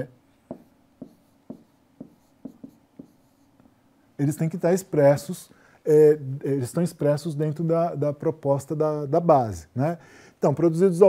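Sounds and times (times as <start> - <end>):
stylus tapping on pen tablet: 0.5 - 3.7.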